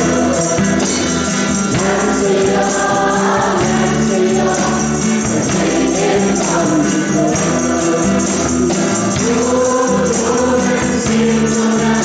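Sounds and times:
bass guitar: 0.0 - 12.0
strummed guitars: 0.0 - 12.0
voices singing a hymn: 0.0 - 12.0.

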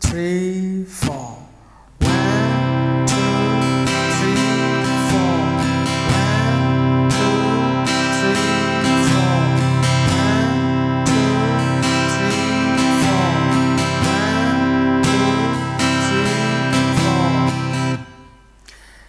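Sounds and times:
acoustic guitar strumming: 2.0 - 18.9.

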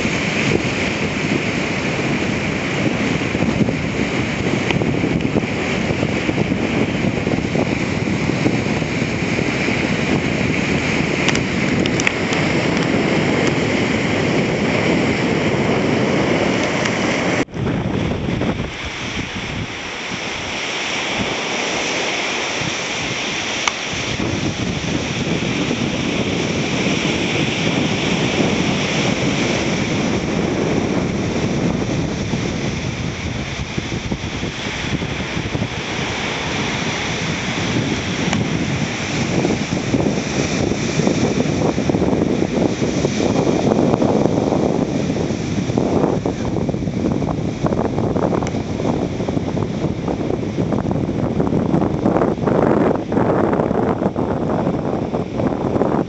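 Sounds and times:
surf waves washing over rocks: 0.0 - 56.0
wind rumbling on microphone: 0.0 - 56.0.

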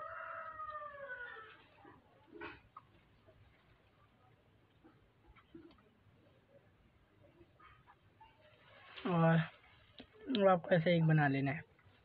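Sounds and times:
rooster crowing: 0.0 - 1.6.

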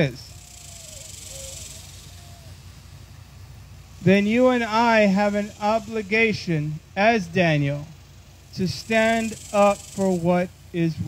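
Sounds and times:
steady high hiss: 0.0 - 11.0.

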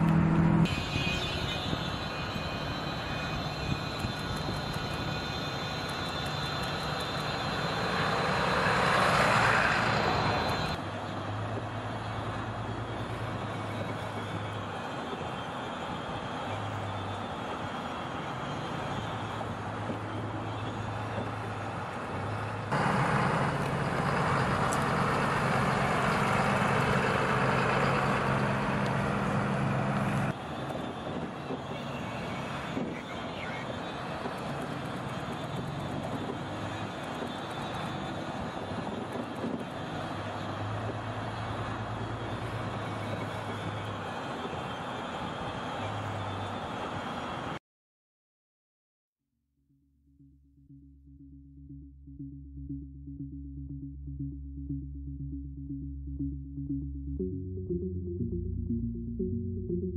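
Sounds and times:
tyre and road noise: 0.0 - 47.6
pickup truck engine hum: 17.8 - 30.4.

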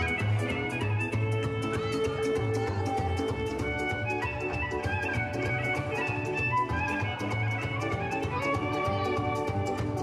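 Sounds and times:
violin dance music: 0.0 - 10.0.

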